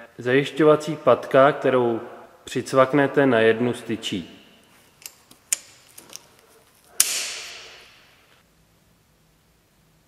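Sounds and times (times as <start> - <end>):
plastic clip snapping on: 5.0 - 7.8.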